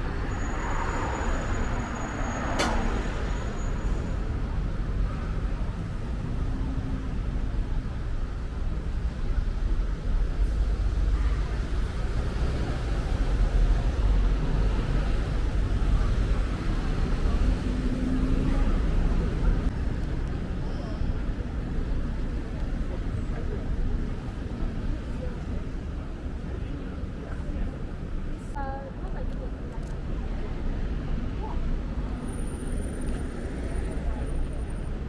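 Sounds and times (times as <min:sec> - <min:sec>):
road traffic rumble: 0:00.0 - 0:35.0.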